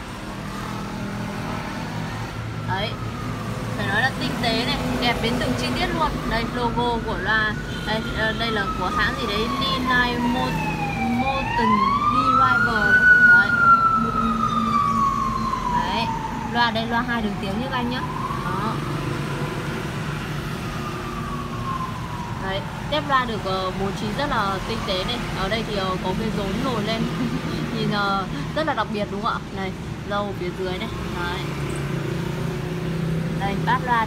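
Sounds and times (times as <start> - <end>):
siren-like wailing tone: 2.6 - 27.4.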